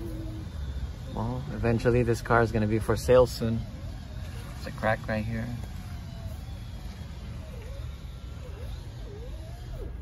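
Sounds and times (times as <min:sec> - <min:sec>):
faint gliding wavering tones: 0:00.0 - 0:10.0
low outdoor rumble: 0:00.0 - 0:10.0.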